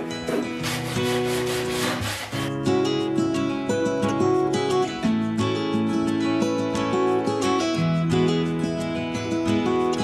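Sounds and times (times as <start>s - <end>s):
hand saw cutting wood: 0.0s - 2.6s
background guitar music: 0.0s - 10.0s.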